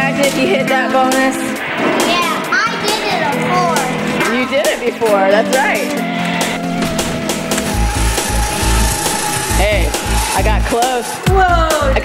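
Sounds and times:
arcade music with bass beat: 6.9s - 10.5s.

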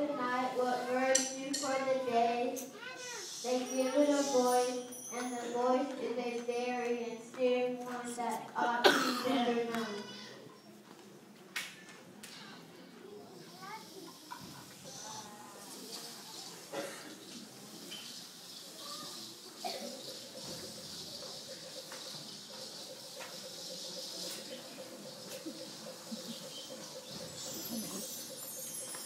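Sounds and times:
faint high hiss: 0.4s - 4.9s
pulsing frog trill: 22.7s - 29.0s.

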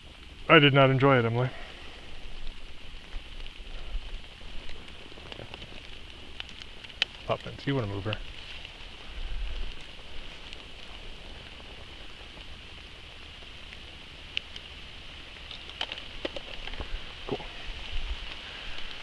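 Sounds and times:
light rain on leaves: 0.0s - 19.0s.

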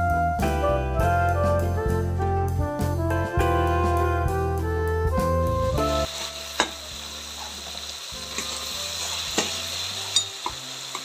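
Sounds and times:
background music: 0.0s - 11.0s
vegetables sizzling in oil: 5.6s - 11.0s
spatula clinking against pan: 9.4s - 10.6s.

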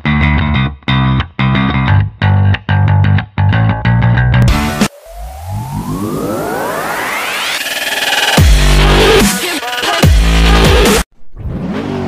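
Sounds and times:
rising synthesizer sweep: 4.5s - 9.4s.

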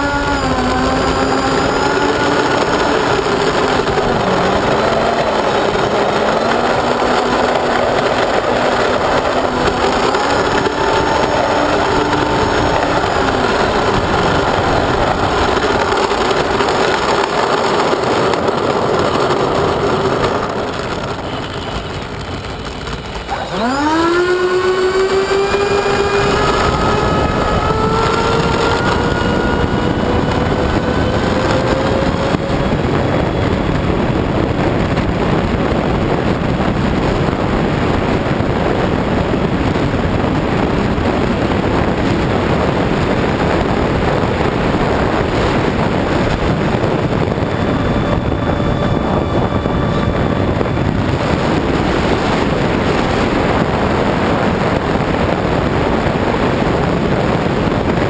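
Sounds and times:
model jet fans whining: 0.0s - 58.0s.

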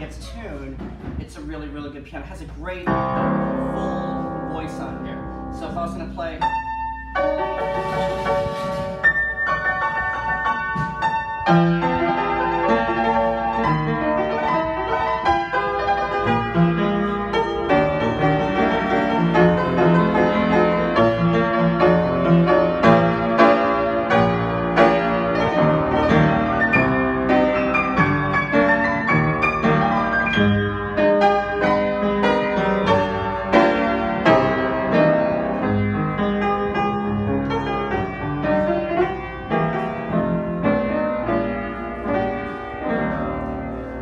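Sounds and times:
upright piano playing: 0.0s - 44.0s.

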